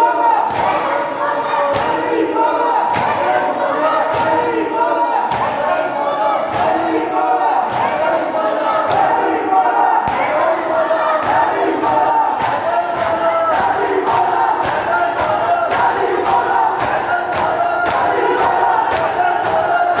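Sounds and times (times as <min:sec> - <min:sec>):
men chanting: 0:00.0 - 0:20.0
hands slapping chests: 0:04.1 - 0:04.5, 0:05.3 - 0:05.6, 0:07.7 - 0:08.0, 0:08.8 - 0:09.3, 0:10.0 - 0:20.0.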